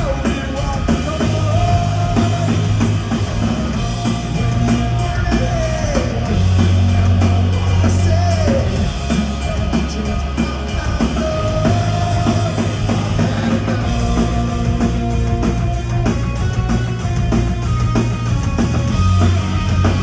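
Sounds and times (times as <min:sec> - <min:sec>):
bass guitar: 0:00.0 - 0:20.0
distorted electric guitar: 0:00.0 - 0:20.0
drum kit: 0:00.0 - 0:20.0.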